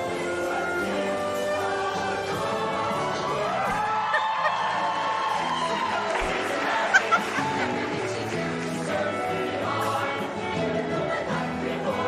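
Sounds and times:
musical backing: 0:00.0 - 0:12.0.

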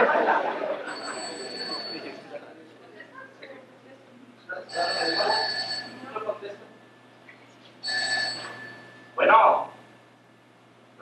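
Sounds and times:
telephone ringing: 0:00.7 - 0:02.3, 0:04.7 - 0:06.4, 0:07.8 - 0:09.9.

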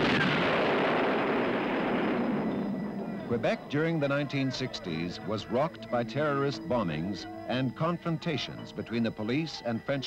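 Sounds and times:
bomb explosion: 0:00.0 - 0:03.1.

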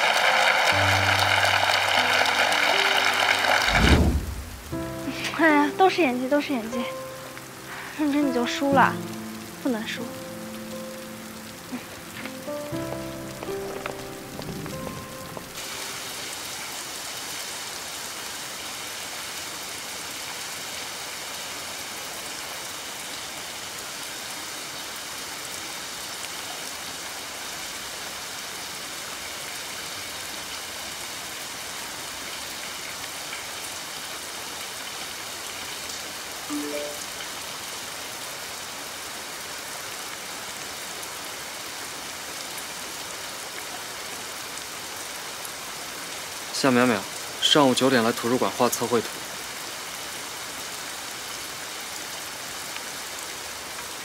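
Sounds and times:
steady rain falling: 0:00.0 - 0:54.0.

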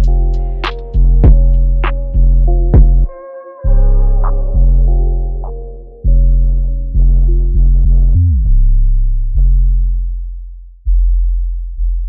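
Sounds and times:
deep bass notes: 0:00.0 - 0:12.0.

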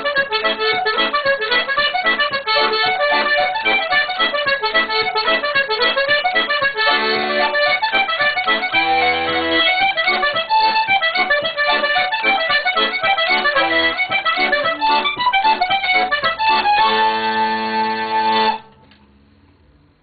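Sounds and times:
button accordion playing: 0:00.0 - 0:18.8.

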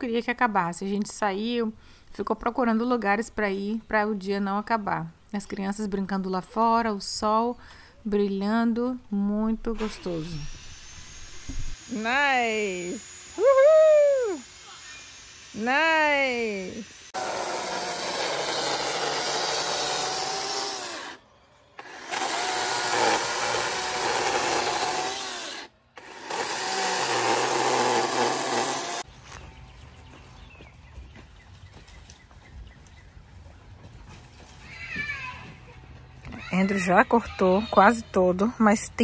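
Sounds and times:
electric chainsaw cutting: 0:09.8 - 0:21.2, 0:21.8 - 0:29.1.

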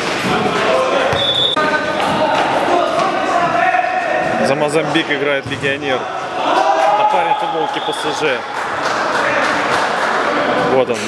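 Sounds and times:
ball bouncing and kicked: 0:01.1 - 0:01.4, 0:05.4 - 0:05.8.

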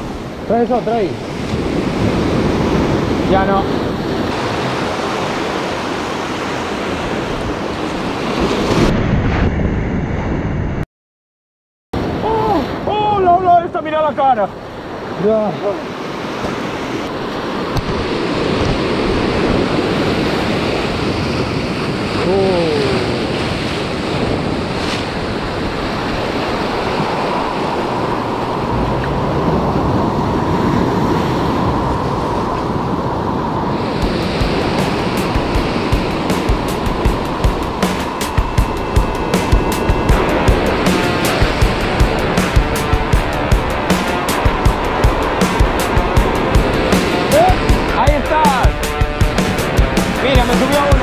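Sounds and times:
surf breaking over rocks: 0:00.0 - 0:09.5, 0:12.0 - 0:51.0
wind on microphone: 0:00.0 - 0:10.8, 0:15.8 - 0:51.0
rock music with drum beat: 0:34.0 - 0:51.0.

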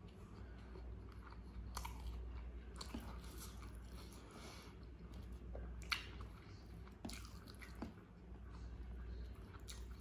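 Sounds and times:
chewing food: 0:00.0 - 0:10.0
faint low hum: 0:00.0 - 0:10.0.

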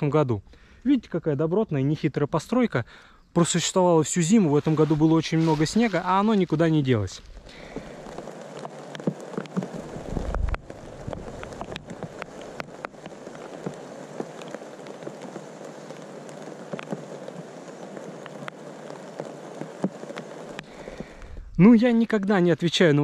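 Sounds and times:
dry plant material rustling: 0:04.1 - 0:22.1.

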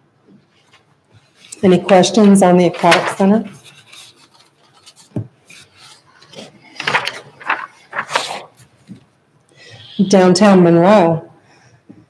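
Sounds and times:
rubbing and rustling handling noise: 0:00.4 - 0:09.3.

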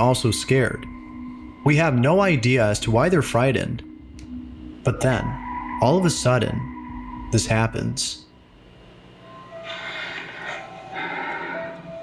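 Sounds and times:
eerie ambient music: 0:00.0 - 0:12.0.

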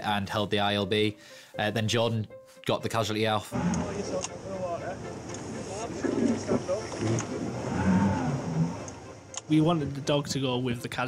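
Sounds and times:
wind: 0:03.5 - 0:11.0
water: 0:03.6 - 0:11.0.

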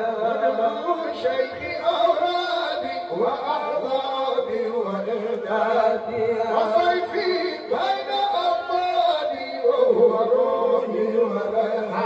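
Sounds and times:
men chanting into microphones: 0:00.0 - 0:12.0.

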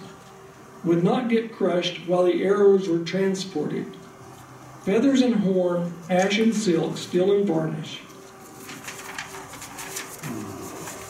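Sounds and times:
faint steady hum: 0:00.0 - 0:11.0
paper rustling: 0:06.0 - 0:11.0.

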